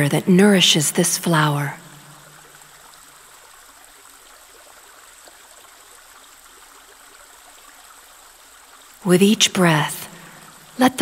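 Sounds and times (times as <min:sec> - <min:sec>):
faint running water: 0:00.0 - 0:11.0.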